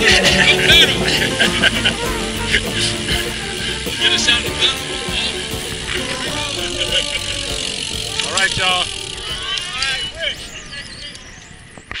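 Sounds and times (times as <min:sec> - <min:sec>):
indistinct voices calling out: 0:00.0 - 0:11.2
road noise: 0:00.0 - 0:12.0.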